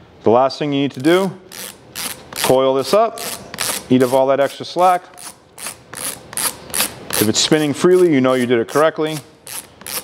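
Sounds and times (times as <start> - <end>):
boot dial ratchet clicking: 1.0 - 2.5, 5.2 - 7.4, 8.0 - 10.0.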